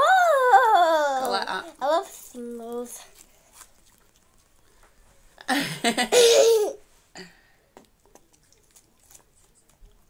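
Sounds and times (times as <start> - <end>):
girl laughing: 5.5 - 6.8.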